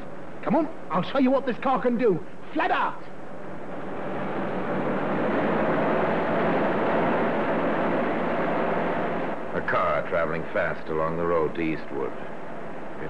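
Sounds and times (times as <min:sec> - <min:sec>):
road noise: 0:00.0 - 0:13.0
car engine driven fast: 0:03.1 - 0:13.0.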